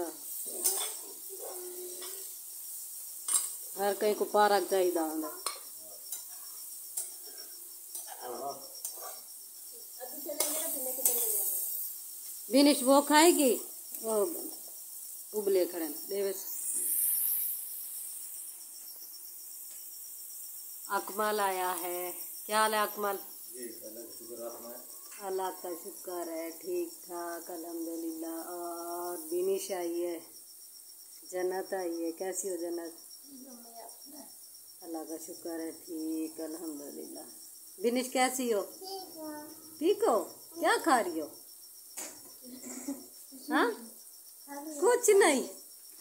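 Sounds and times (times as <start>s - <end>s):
eggs sizzling in a pan: 0.0s - 46.0s.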